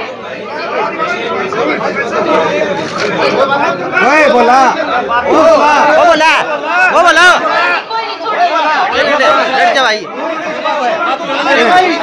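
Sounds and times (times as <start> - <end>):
people arguing: 0.0 - 12.0.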